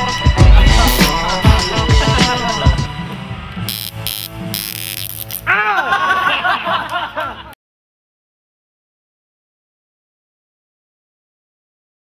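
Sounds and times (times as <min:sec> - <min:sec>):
electric buzz of gadget: 0:00.8 - 0:01.2, 0:03.6 - 0:05.5
laughter: 0:05.5 - 0:07.6.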